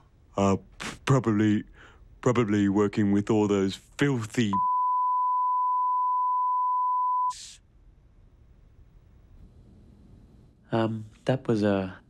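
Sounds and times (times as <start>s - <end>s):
censor bleep tone: 4.5s - 7.4s.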